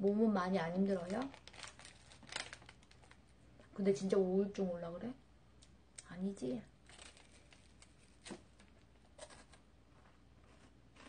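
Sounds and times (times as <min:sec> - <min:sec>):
plastic wrapper crinkling: 0:00.0 - 0:03.4, 0:06.8 - 0:09.6.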